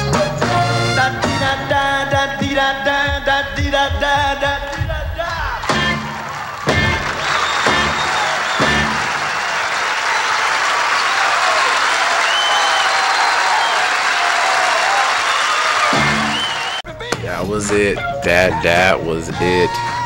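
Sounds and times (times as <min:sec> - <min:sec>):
live band music: 0:00.0 - 0:09.4, 0:15.9 - 0:20.0
audience applauding: 0:04.7 - 0:16.8.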